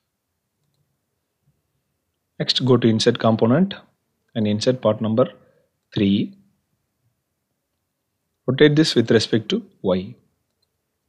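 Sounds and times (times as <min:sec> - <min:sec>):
faint click: 0:00.6 - 0:00.9, 0:10.4 - 0:10.8.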